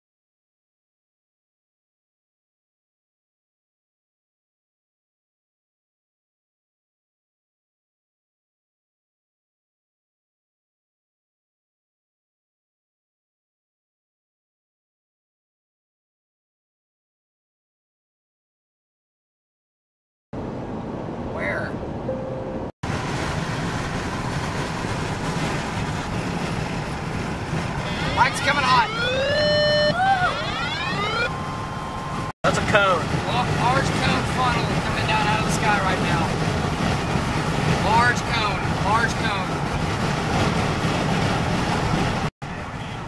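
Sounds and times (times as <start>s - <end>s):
road and wind noise in vehicle: 20.4s - 43.0s
loud sweeping pitched tone: 27.8s - 34.5s.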